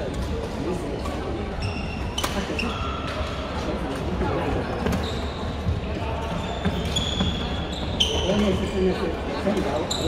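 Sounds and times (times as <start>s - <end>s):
shoes squeaking on court floor: 1.5s - 3.4s, 4.5s - 10.0s.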